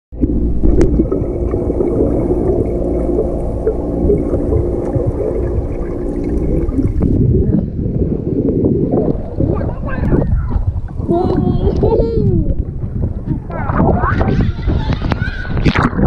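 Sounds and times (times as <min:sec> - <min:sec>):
muffled underwater rumble: 0:00.1 - 0:16.0
water splashing: 0:00.2 - 0:07.4
faint hum: 0:00.2 - 0:14.1.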